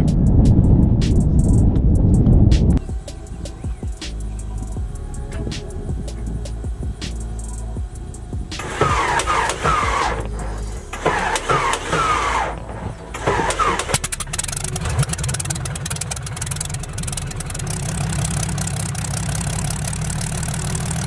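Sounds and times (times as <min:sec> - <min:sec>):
propeller engine running: 0:00.0 - 0:21.0
aircraft engine starter whine: 0:02.8 - 0:21.0.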